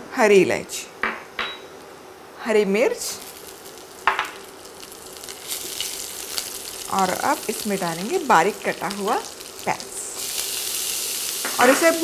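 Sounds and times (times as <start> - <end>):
chillies sizzling in hot oil: 2.8 - 12.0.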